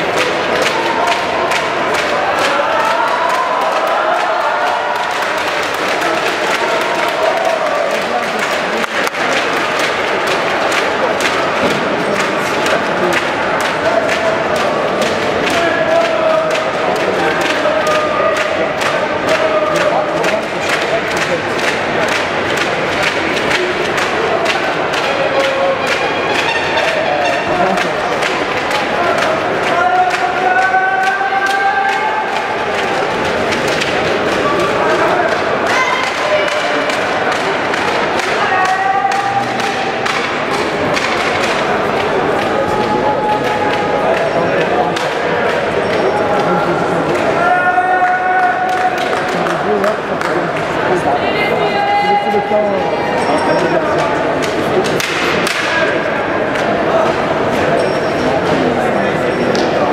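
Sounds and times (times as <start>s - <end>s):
crowd shouting and chanting: 0.0s - 59.9s.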